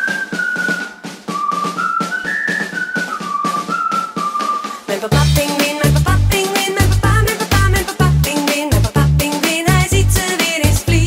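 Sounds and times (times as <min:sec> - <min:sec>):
whistled melody: 0:00.0 - 0:05.0
light percussion beat: 0:00.0 - 0:11.0.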